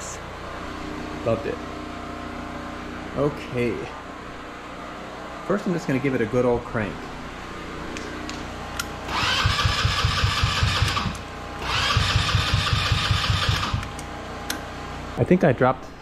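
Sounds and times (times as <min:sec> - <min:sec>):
electric starter whine: 0:00.0 - 0:15.1
engine cranking without starting: 0:09.1 - 0:14.0.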